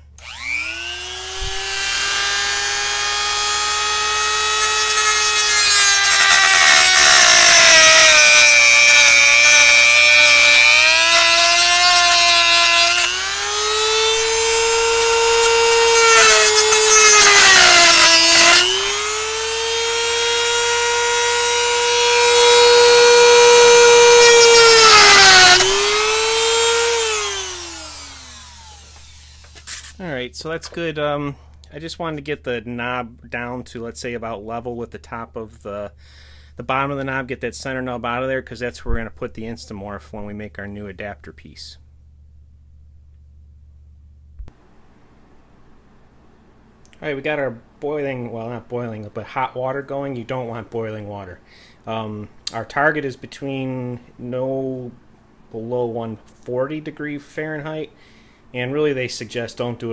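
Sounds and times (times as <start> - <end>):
rotary tool cutting whine: 0.2 - 30.0.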